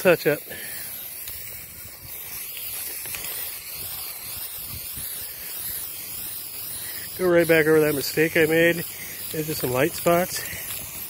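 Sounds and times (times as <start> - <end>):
spray paint can hissing: 0.0 - 11.0.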